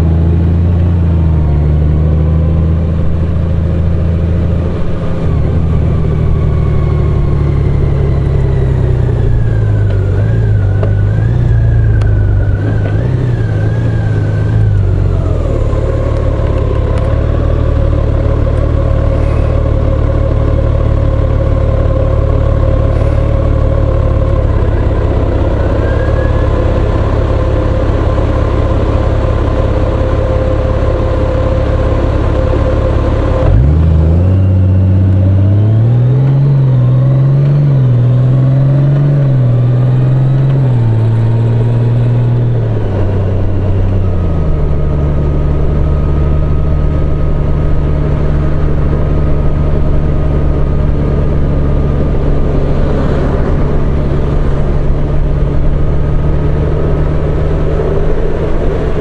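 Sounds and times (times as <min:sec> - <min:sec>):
motorcycle accelerating through gears: 0:00.0 - 0:59.0
motorcycle engine idling: 0:03.0 - 0:33.4.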